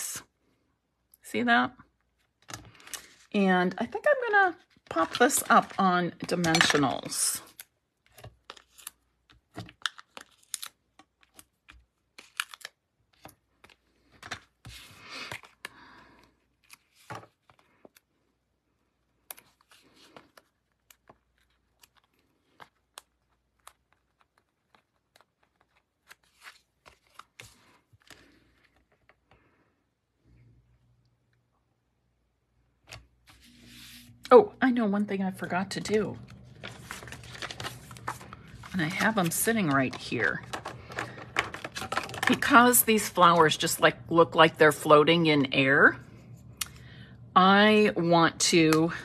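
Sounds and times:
cardstock rustling: 4.5s - 15.7s, 19.3s - 29.3s, 35.4s - 43.5s.

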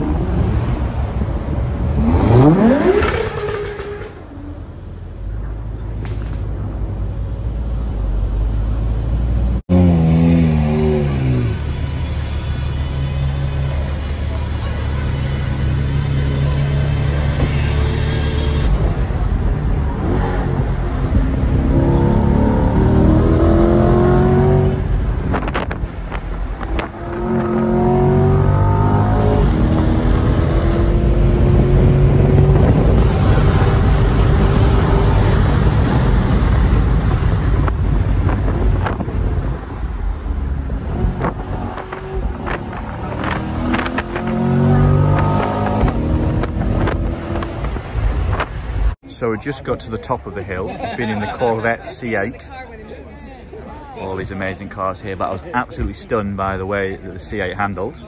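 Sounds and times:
car engine revving: 0.0s - 5.0s, 8.5s - 48.8s.

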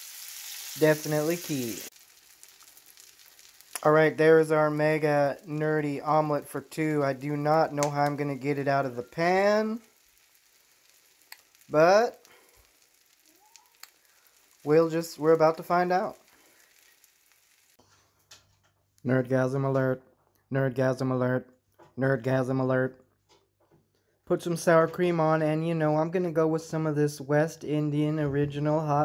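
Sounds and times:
omelette sizzling in frying pan: 0.0s - 18.5s
man talking: 0.8s - 1.9s, 3.8s - 9.9s, 11.7s - 12.2s, 14.6s - 16.2s, 19.0s - 23.0s, 24.3s - 29.0s.

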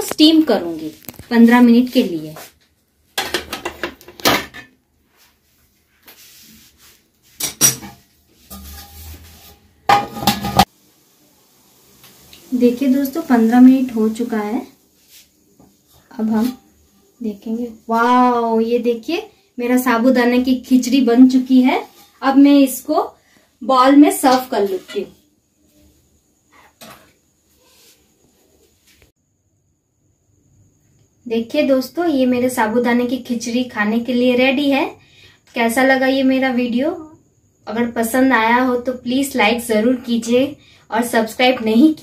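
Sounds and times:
metal lid clattering on pot: 9.9s - 10.7s.

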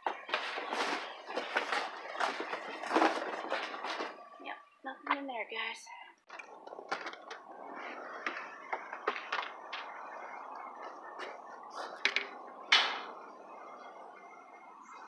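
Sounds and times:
rustling: 0.0s - 4.4s
steady background noise: 0.0s - 15.0s.

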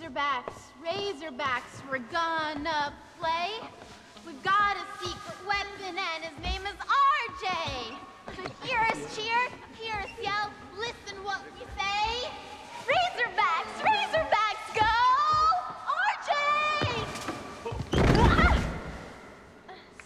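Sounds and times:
body thumping on gym floor: 16.8s - 19.1s.

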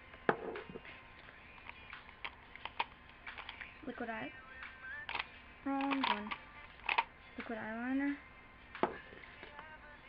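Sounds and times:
makeup pencils clinking: 1.6s - 3.7s, 5.1s - 7.1s.

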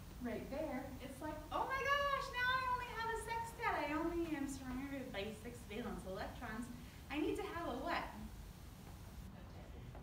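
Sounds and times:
woman speaking: 0.2s - 8.3s.

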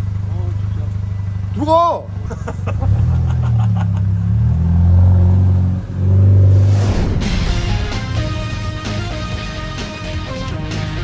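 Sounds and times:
car engine revving: 2.2s - 11.0s.

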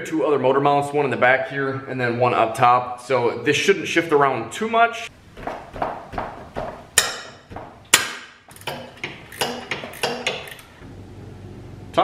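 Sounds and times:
wrench clanking on bolts: 7.0s - 10.8s.

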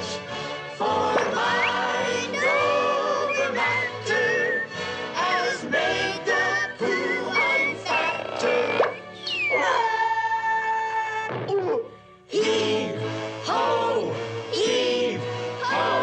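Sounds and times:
voices singing a lively tune: 0.0s - 10.6s, 12.3s - 16.0s.

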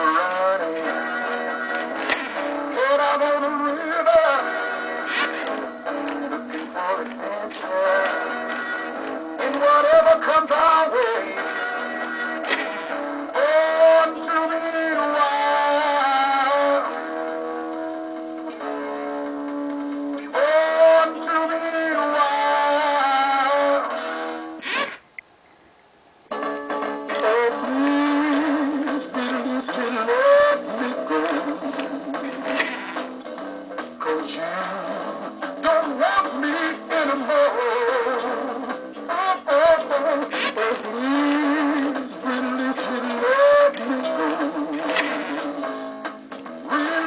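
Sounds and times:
synthetic male singing voice: 0.0s - 12.6s, 13.2s - 17.0s, 20.2s - 24.0s, 27.1s - 32.7s, 34.0s - 45.7s, 46.6s - 47.0s
toy playing rock song: 0.0s - 25.0s, 26.3s - 47.0s.

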